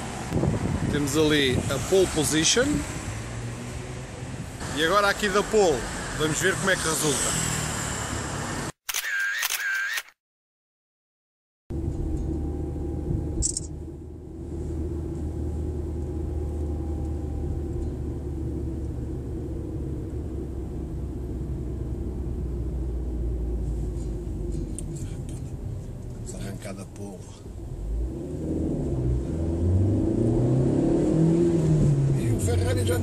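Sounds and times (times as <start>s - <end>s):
car engine and road noise: 0.0s - 10.0s, 11.7s - 33.0s.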